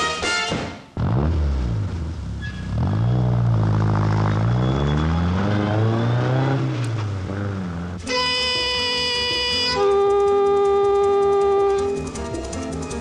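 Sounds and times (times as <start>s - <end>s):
motor engine revving: 1.0s - 8.0s.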